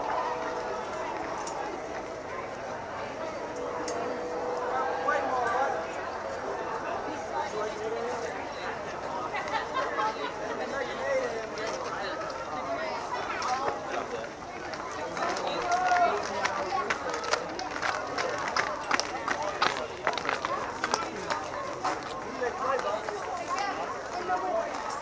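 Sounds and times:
people talking indistinctly: 0.0s - 25.0s.

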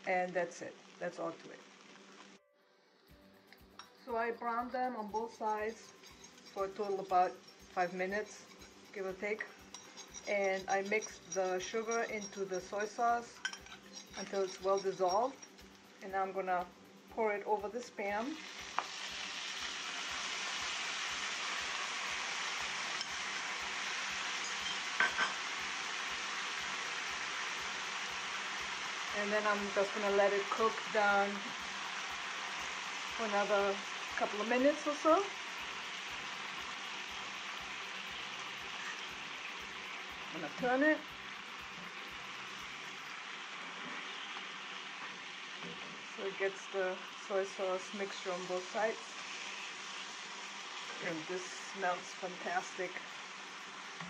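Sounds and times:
meat sizzling in a frying pan: 0.0s - 2.4s, 3.6s - 54.0s
dishware clinks: 24.4s - 25.4s.

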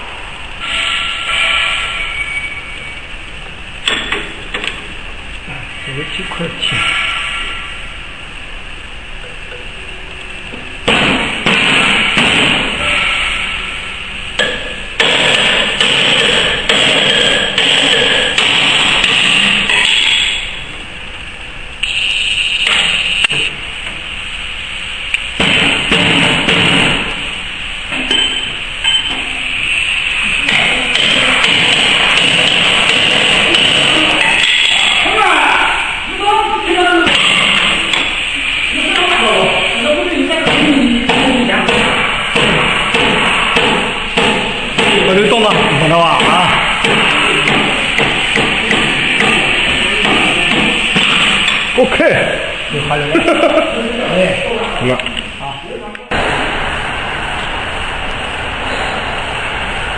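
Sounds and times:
loud noise bursts: 0.0s - 59.9s
indistinct voices: 5.4s - 8.0s, 12.0s - 14.9s, 29.2s - 56.2s.

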